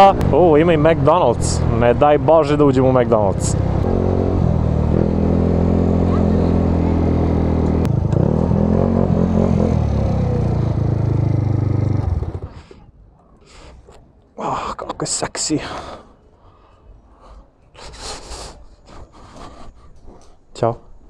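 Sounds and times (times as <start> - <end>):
motorcycle engine running: 3.5 - 12.6.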